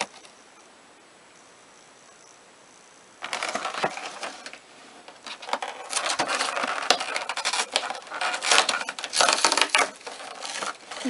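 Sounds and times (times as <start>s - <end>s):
cardboard tearing and rustling: 3.2s - 11.0s.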